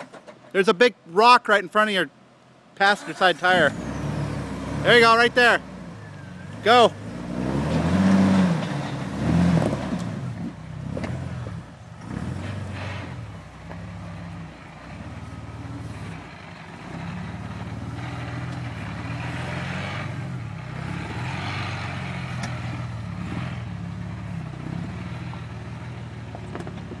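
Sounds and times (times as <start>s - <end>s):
car engine revving: 3.0s - 27.0s.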